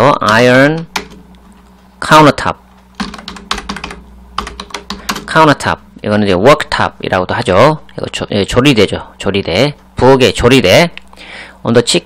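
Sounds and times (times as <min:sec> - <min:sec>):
computer keyboard typing: 0:00.2 - 0:01.4, 0:02.9 - 0:05.4.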